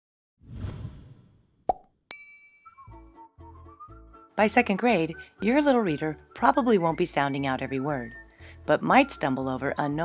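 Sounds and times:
soft whoosh: 0.5s - 1.4s
bright chime: 2.1s - 3.2s.

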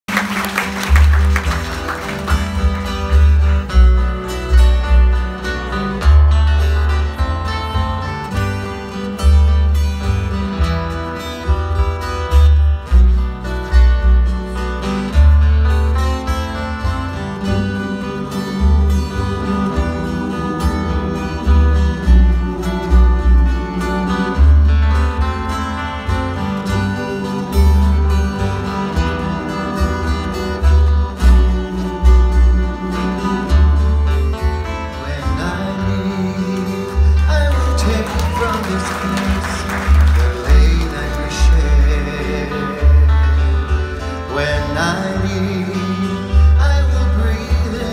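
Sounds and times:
strummed ukulele and guitars: 0.0s - 47.9s
plucked upright bass: 0.1s - 47.9s
person singing: 17.3s - 47.9s.

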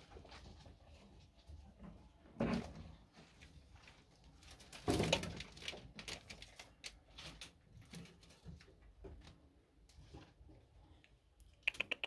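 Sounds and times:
rats crinkling newspaper bedding: 3.8s - 8.4s.

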